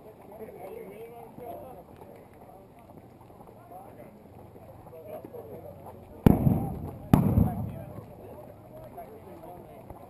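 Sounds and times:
pyrotechnic bang: 6.3s - 8.1s.

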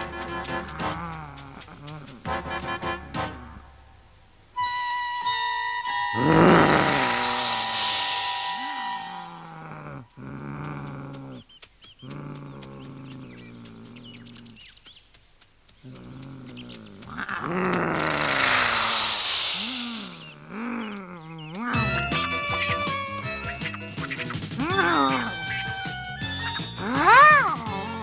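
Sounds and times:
cartoon animals growling and snarling: 0.0s - 3.7s, 6.1s - 14.6s, 15.8s - 23.0s, 24.2s - 28.0s.

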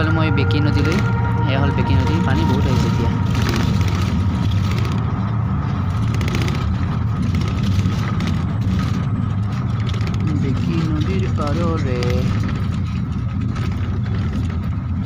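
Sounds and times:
vehicle cabin rumble: 0.0s - 15.0s.

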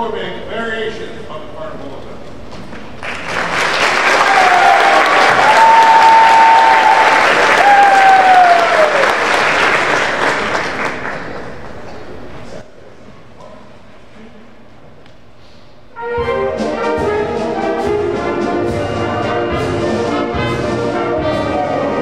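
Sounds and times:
audience applauding: 3.0s - 12.2s
person cheering: 4.2s - 9.2s.

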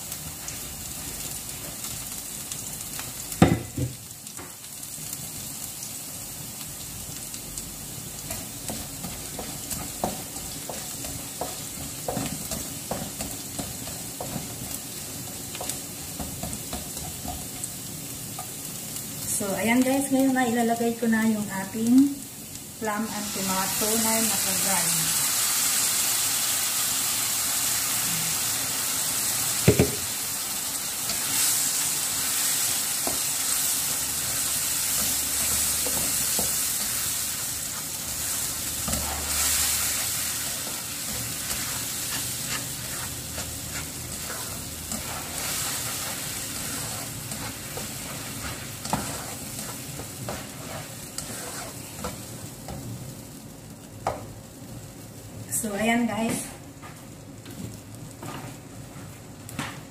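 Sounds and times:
food sizzling in a wok: 0.0s - 59.9s
spatula scraping and tapping pan: 8.2s - 17.7s, 34.9s - 37.0s, 40.6s - 52.8s.

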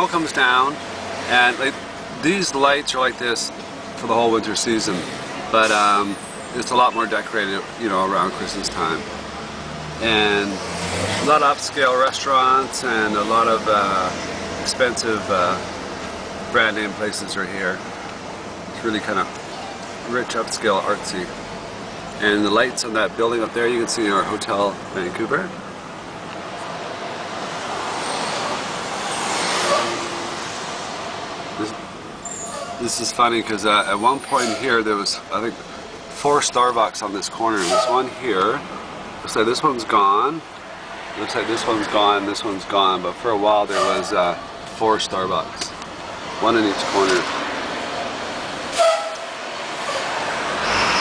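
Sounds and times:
road noise inside moving car: 0.0s - 51.0s
short horn toot: 48.7s - 49.3s.

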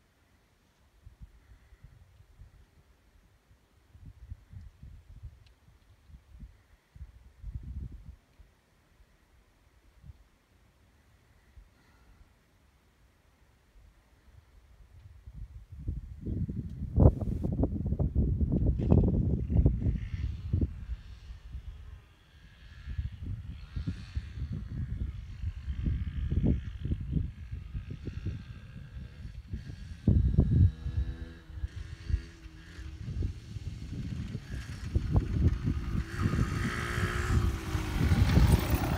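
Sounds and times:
wind buffeting microphone: 15.1s - 21.9s, 22.9s - 38.9s
two-stroke motorcycle engine: 22.2s - 38.9s.

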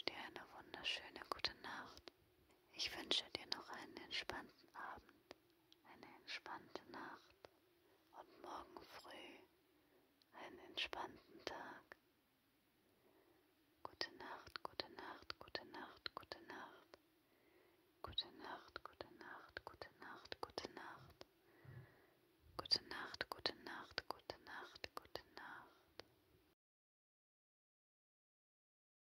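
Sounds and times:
woman whispering: 0.0s - 2.1s, 2.7s - 5.2s, 5.8s - 7.5s, 8.1s - 9.5s, 10.3s - 12.0s, 13.8s - 17.0s, 18.0s - 21.3s, 22.6s - 26.1s
faint steady hum: 0.0s - 26.5s.

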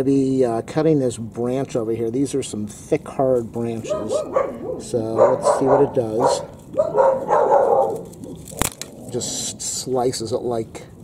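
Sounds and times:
dog barking: 3.8s - 8.1s
pruning shears snapping branch: 7.9s - 8.9s.

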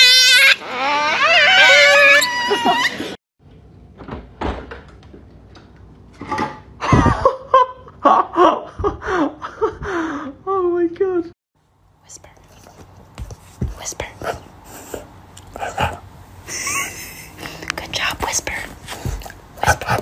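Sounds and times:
men laughing: 6.8s - 10.2s, 15.6s - 17.7s.

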